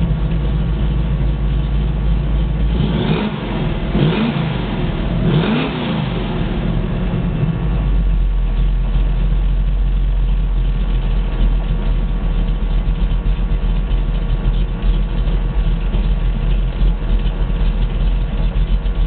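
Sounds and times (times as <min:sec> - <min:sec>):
car engine idling: 0:00.0 - 0:19.0.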